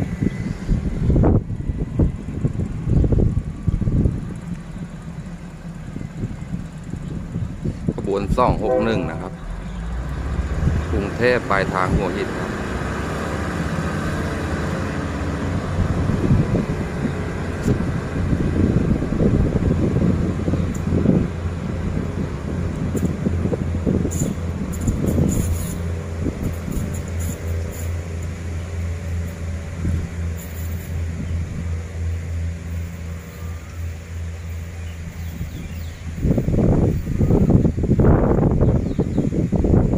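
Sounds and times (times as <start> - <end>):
train diesel engine droning: 0.0 - 39.9
train wheels rumbling on track: 0.0 - 39.9.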